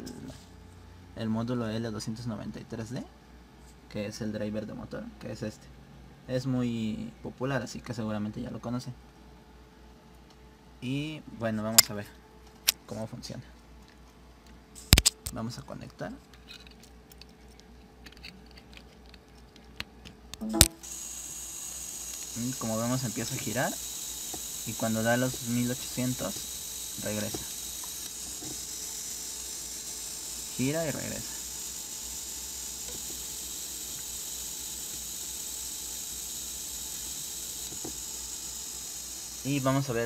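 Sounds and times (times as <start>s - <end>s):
small motor running: 20.7s - 40.0s.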